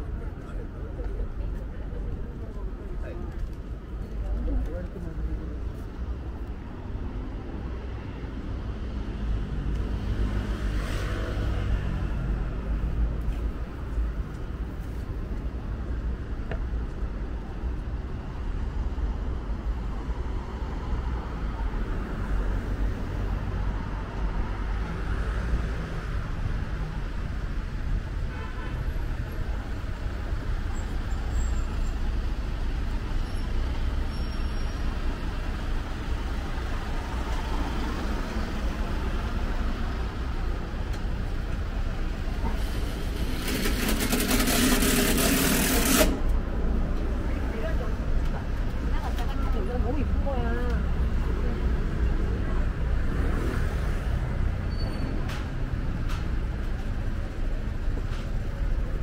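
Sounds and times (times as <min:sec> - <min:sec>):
street traffic rumble: 0:00.0 - 0:59.0.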